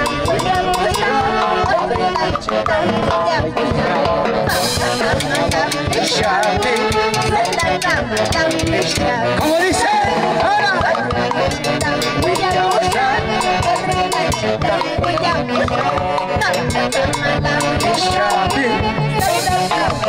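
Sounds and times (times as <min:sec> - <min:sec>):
saxophones: 0:00.0 - 0:20.0
timbales and drum kit: 0:00.0 - 0:20.0
woman singing through pa speaker: 0:00.0 - 0:20.0.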